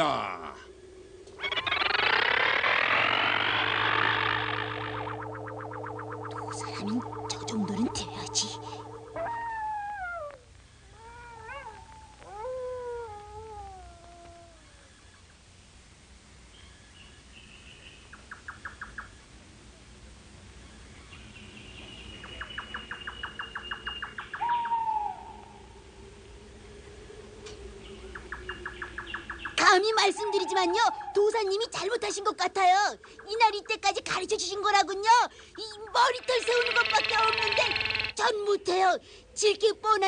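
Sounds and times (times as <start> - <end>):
insects chirping in pulsed trains: 0.0 - 9.8, 16.5 - 40.0
wavering falling cries: 0.0 - 14.9, 24.4 - 31.3.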